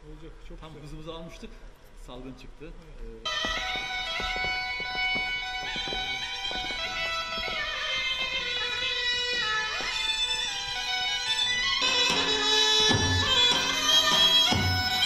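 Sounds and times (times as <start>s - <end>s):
folk dance music: 3.3s - 15.0s.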